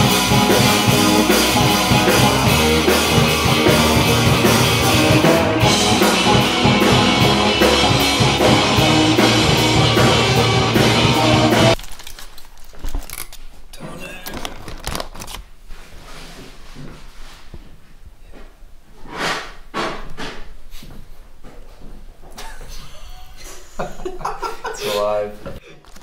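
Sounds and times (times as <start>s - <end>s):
live band playing loudly: 0.0s - 11.8s
rustling and handling noises: 11.8s - 18.6s.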